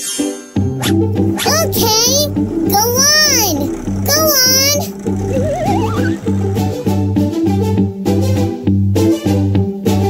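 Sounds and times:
bouncy cartoon music: 0:00.8 - 0:07.2
squeaky cartoon voice calls: 0:01.4 - 0:06.2.

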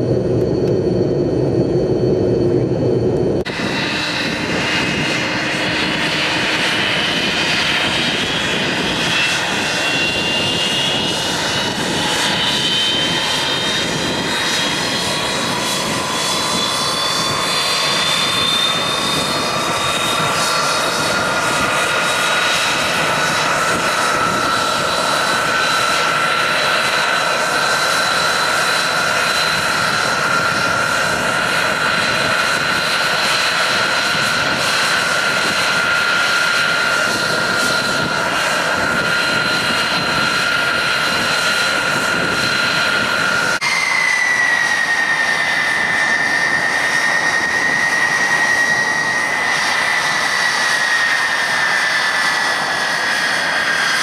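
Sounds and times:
jet engines roaring with whine: 0:00.0 - 0:54.0.

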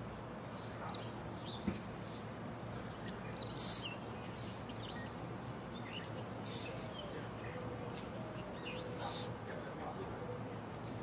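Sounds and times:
outdoor background hiss: 0:00.0 - 0:11.0
faint bird chirps: 0:00.6 - 0:09.4.

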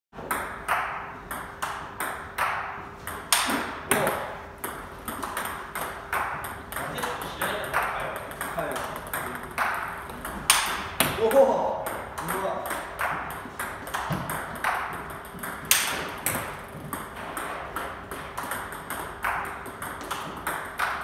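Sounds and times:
table tennis ball clicks: 0:00.3 - 0:21.0.

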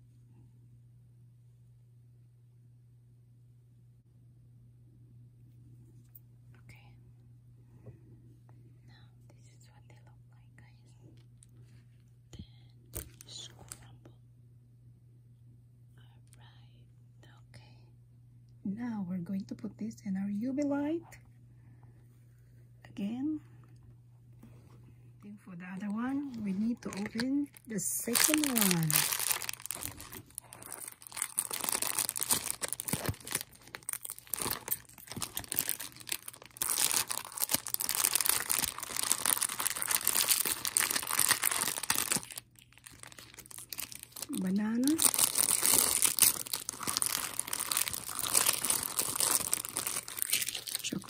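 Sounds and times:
plastic foil sachets crinkling: 0:25.7 - 0:51.0
packaging rustling: 0:25.9 - 0:51.0.

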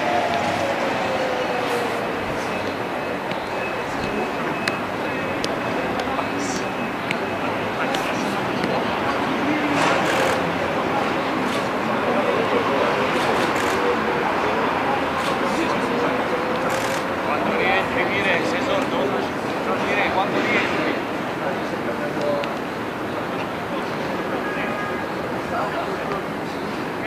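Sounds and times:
indistinct voices: 0:00.0 - 0:27.0
steady background noise: 0:00.0 - 0:27.0.

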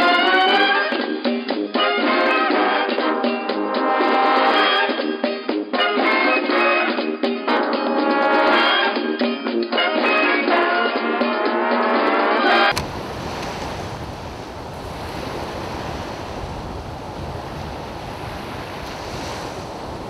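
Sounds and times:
sea waves: 0:12.4 - 0:20.0
wind: 0:12.7 - 0:20.0.

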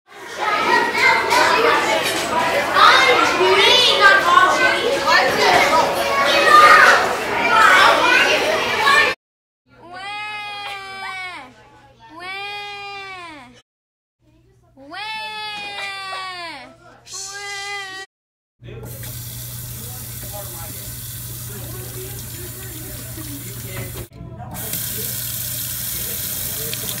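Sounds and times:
children talking and calling out: 0:00.1 - 0:09.2, 0:09.8 - 0:13.6, 0:14.5 - 0:18.1
faucet running into metal sink: 0:18.7 - 0:27.0.

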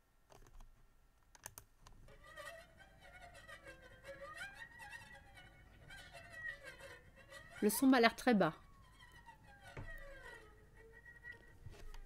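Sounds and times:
needle rubbing harp string whine: 0:02.1 - 0:12.0.

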